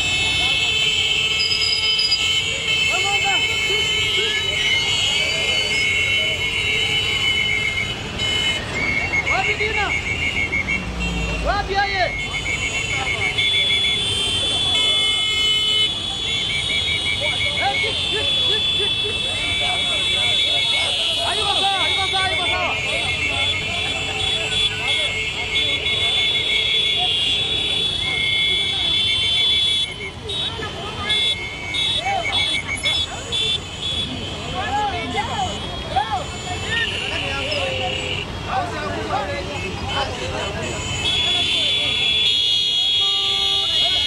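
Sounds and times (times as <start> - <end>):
blaring motorcycle horns: 0.0 - 11.5, 12.1 - 44.0
motorcycles rumbling: 0.0 - 44.0
rapid beeping horn: 0.0 - 44.0
people shouting: 17.2 - 25.8, 34.0 - 42.0.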